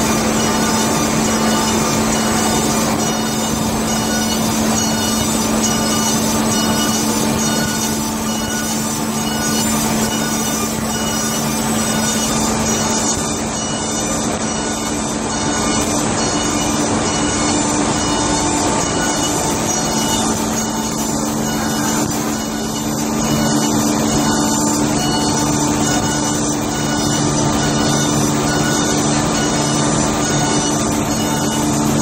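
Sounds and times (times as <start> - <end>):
machine low drone: 0.0 - 32.0
repeating mechanical clatter: 0.0 - 32.0.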